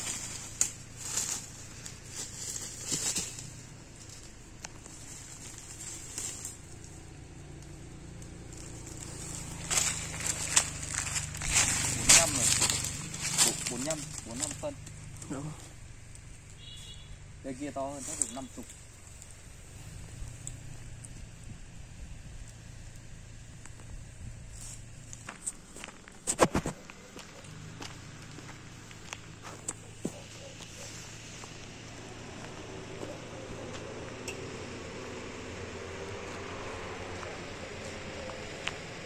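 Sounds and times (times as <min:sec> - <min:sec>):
footsteps through dry undergrowth: 0:00.0 - 0:21.2, 0:22.6 - 0:39.0
small cracks: 0:07.6 - 0:15.0.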